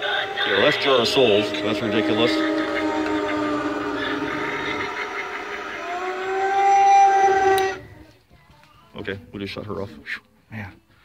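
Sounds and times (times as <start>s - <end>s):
eerie wavering tones from speaker: 0.0s - 7.9s.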